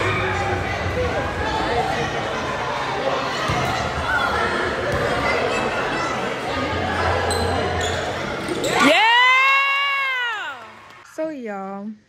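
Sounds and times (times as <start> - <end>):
spectators chattering: 0.0 - 9.1
shoe squeaks on court: 7.2 - 8.9.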